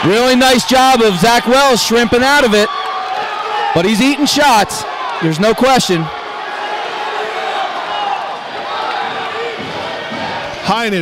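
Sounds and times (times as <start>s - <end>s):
people shouting: 0.0s - 10.7s
arena crowd hubbub: 0.0s - 11.0s.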